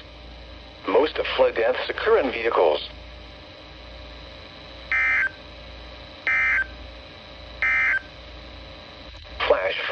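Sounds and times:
warbling digital data tones: 0:04.9 - 0:05.4, 0:06.3 - 0:06.8, 0:07.6 - 0:08.1.

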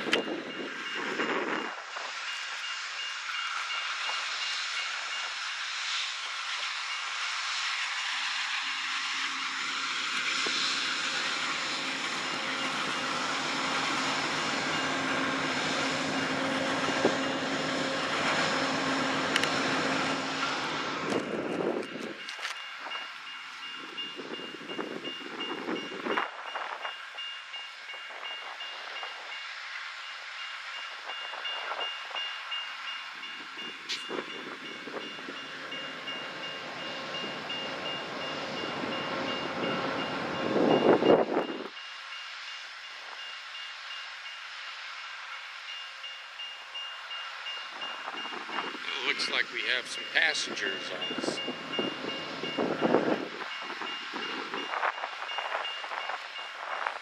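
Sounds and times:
crossing bell ringing: 0:00.0 - 0:05.6, 0:08.7 - 0:44.6, 0:45.2 - 0:57.0
train rolling into station: 0:00.0 - 0:57.0.

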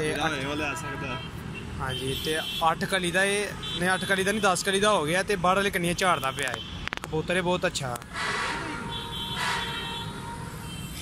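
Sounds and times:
distant traffic: 0:00.0 - 0:11.0.

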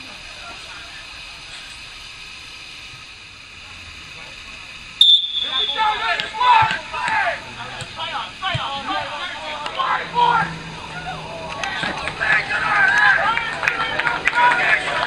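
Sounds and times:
people shouting: 0:05.4 - 0:15.0.

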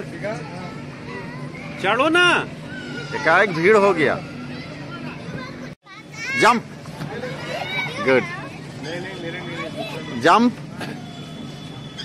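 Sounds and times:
children chattering: 0:02.7 - 0:12.0.

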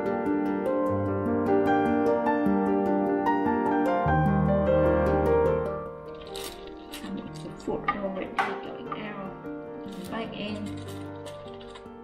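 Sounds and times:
soft background music: 0:00.0 - 0:12.0
chopsticks clicking and tapping: 0:06.2 - 0:09.2, 0:09.9 - 0:11.9.

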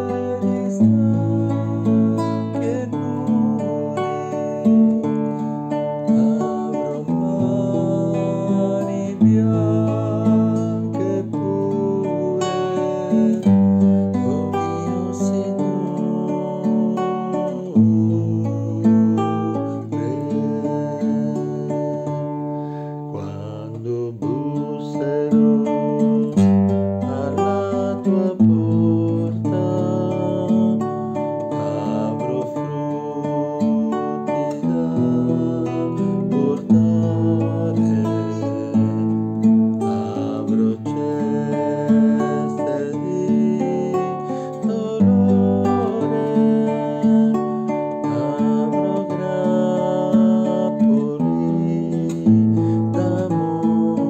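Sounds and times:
classical guitar playing chords: 0:00.0 - 0:54.0.

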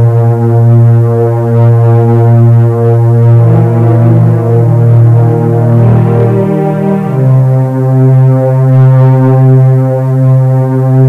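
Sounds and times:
low droning chord: 0:00.0 - 0:11.0.

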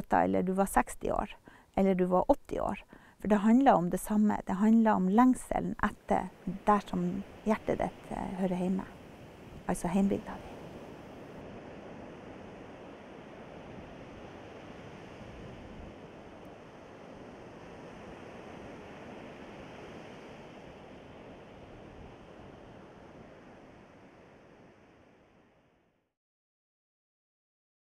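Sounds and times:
sea: 0:00.0 - 0:26.0
wind: 0:00.0 - 0:26.0.

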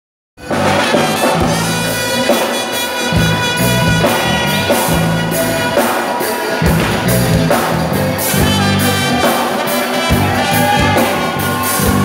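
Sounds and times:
live band playing upbeat song: 0:00.4 - 0:12.0.

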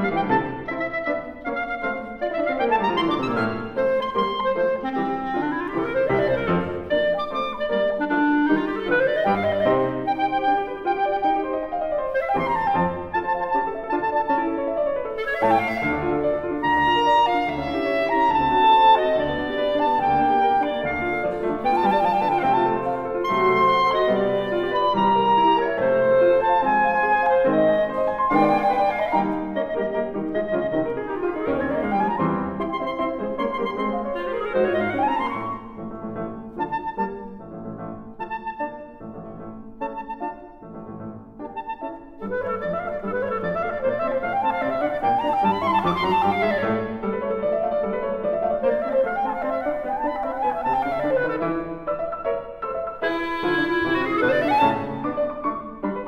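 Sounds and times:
clarinet playing fast runs: 0:00.0 - 0:35.8, 0:41.5 - 0:47.2, 0:48.2 - 0:52.2, 0:52.8 - 0:55.5
piano: 0:00.0 - 0:56.0.

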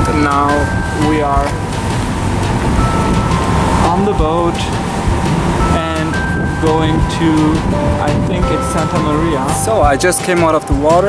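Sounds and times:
wind on microphone: 0:00.0 - 0:10.9
ship engine rumble: 0:00.0 - 0:11.0.

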